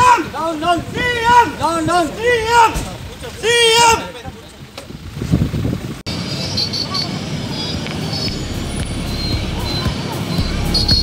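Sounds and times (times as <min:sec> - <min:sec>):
motorbike engine rumbling: 0:00.0 - 0:11.0
street traffic: 0:00.0 - 0:11.0.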